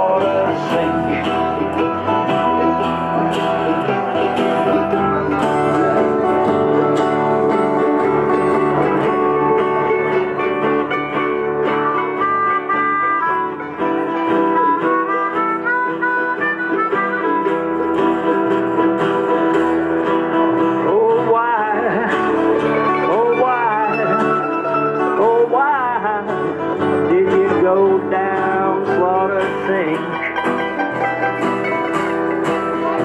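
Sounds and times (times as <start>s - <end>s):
harmonica solo: 0.0s - 20.9s, 21.9s - 27.1s, 30.1s - 33.0s
mandolin: 0.0s - 33.0s
strummed acoustic guitar: 0.0s - 33.0s.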